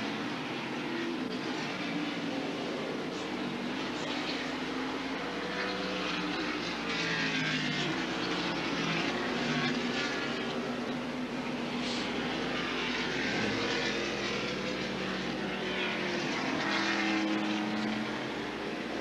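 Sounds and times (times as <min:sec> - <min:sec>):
race car engines: 0:00.0 - 0:19.0.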